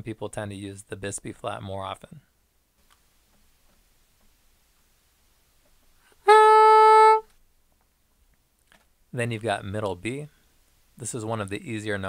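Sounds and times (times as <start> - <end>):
soprano saxophone held note: 6.2 - 7.3.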